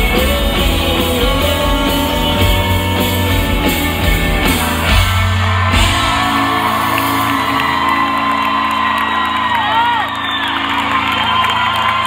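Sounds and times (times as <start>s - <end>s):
crowd whooping and cheering: 3.3s - 12.0s.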